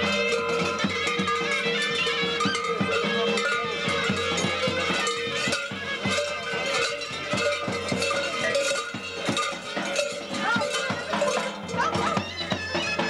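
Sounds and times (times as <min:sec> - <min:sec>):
heavy bells clanging: 0:00.0 - 0:13.0.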